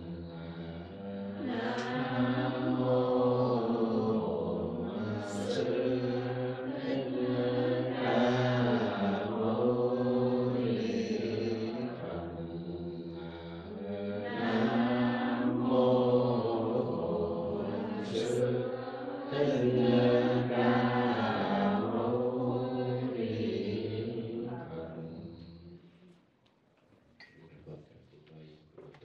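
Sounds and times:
congregation chanting in unison: 0:00.0 - 0:25.9.

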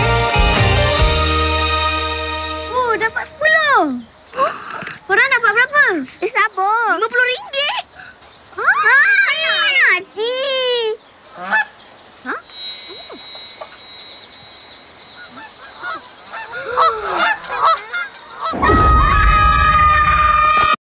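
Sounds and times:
children screaming: 0:08.6 - 0:10.0, 0:15.2 - 0:20.8
child exclamation: 0:08.6 - 0:11.0
children calling out: 0:08.6 - 0:11.0.

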